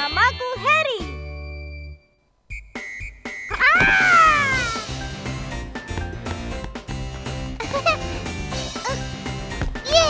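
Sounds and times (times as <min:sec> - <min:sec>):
rhythmic background music: 0:02.5 - 0:03.7, 0:04.4 - 0:10.0.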